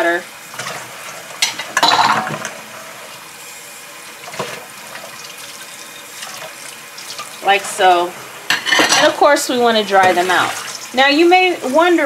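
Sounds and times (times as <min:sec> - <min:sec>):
water running into sink: 0:00.4 - 0:12.0
bowls being rinsed: 0:00.5 - 0:12.0.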